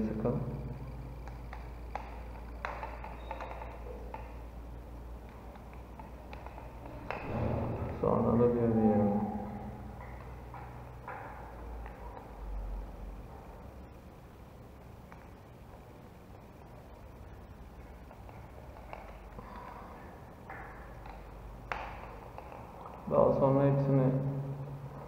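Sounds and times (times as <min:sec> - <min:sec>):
low handling rumble: 0:06.8 - 0:11.0.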